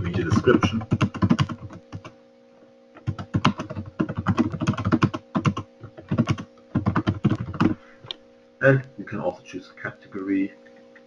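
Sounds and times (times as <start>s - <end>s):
faint steady hum: 0.0s - 11.0s
typing on a computer keyboard: 0.4s - 2.1s, 3.0s - 7.8s.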